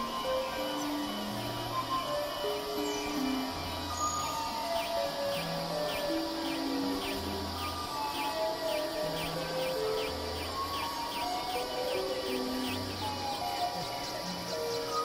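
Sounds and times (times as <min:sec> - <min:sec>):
faint hiss: 0:00.0 - 0:15.0.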